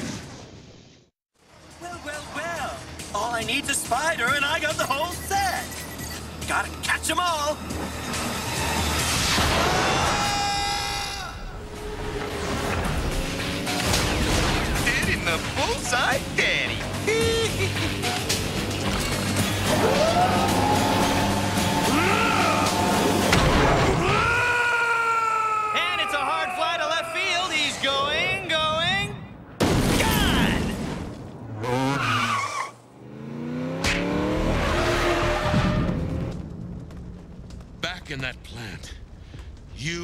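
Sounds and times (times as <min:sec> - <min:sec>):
dramatic score music: 0:11.2 - 0:24.1
impact effects: 0:22.6 - 0:24.2.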